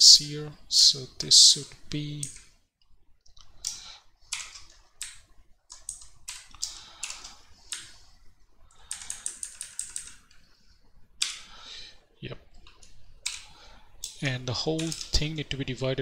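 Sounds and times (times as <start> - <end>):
computer keyboard typing: 2.2 - 2.5, 3.4 - 8.0, 8.7 - 10.5, 12.5 - 15.4.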